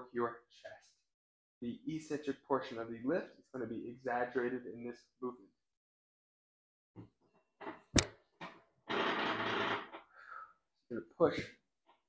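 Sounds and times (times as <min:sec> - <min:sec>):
sharp click: 0:08.0 - 0:08.2.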